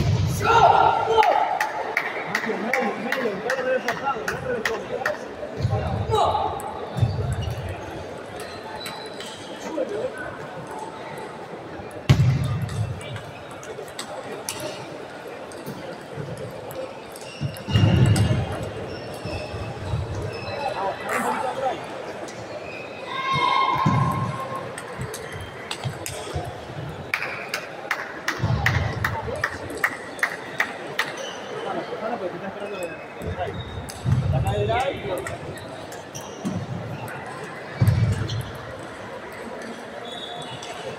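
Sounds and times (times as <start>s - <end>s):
people's voices: 0.0s - 40.9s.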